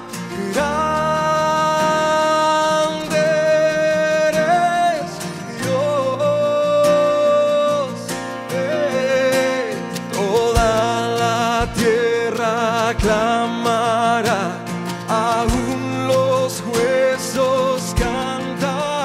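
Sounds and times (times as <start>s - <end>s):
keyboard: 0.0s - 19.0s
man singing long notes: 0.0s - 19.0s
strummed acoustic guitar: 0.0s - 19.0s
drums: 10.5s - 11.0s, 13.0s - 13.4s, 15.5s - 16.1s, 17.9s - 18.4s.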